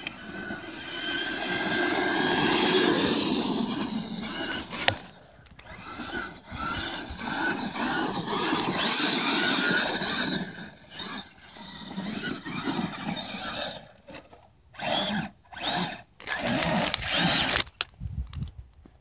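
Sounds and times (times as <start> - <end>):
electric toy truck motors whining: 0.0 - 17.9.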